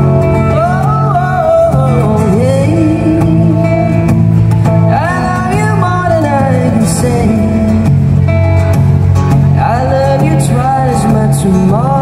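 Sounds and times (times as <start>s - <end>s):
acoustic guitar: 0.0s - 12.0s
person singing: 0.4s - 4.2s, 4.9s - 7.9s, 9.6s - 12.0s.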